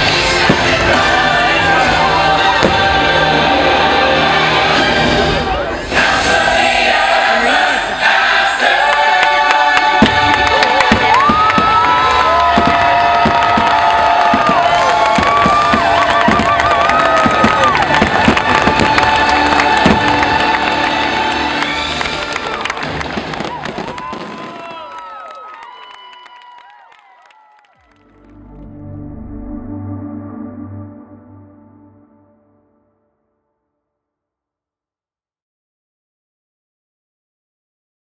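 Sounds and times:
fireworks banging: 0.0s - 1.4s, 9.7s - 21.2s, 22.2s - 24.8s
loud show music: 0.0s - 23.9s
crowd cheering: 0.0s - 28.6s.

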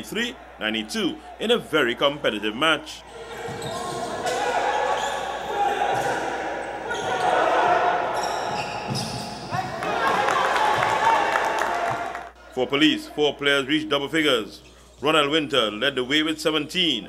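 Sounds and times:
voices and shouts in hall: 0.0s - 14.5s.

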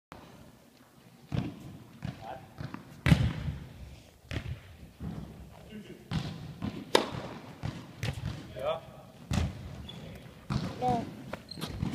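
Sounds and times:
basketball thudding: 1.3s - 3.6s, 4.3s - 5.4s, 6.1s - 8.6s, 9.3s - 9.8s, 10.4s - 11.9s.

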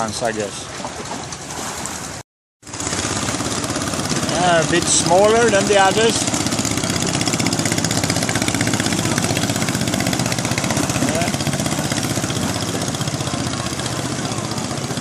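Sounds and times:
boat engine running fast: 0.0s - 15.0s.

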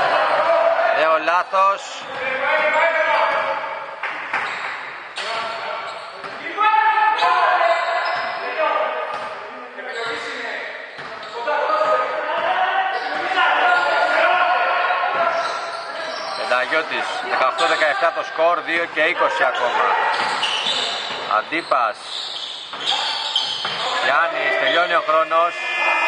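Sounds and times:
players calling out: 9.9s - 26.0s
basketball bouncing on wooden court: 11.0s - 11.4s, 22.3s - 24.0s.

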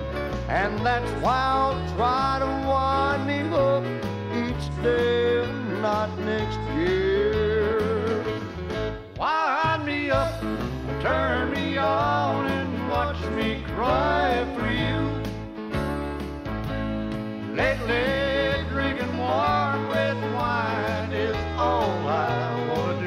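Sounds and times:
bass line: 0.0s - 23.0s
country music lead instrument: 0.0s - 23.0s.

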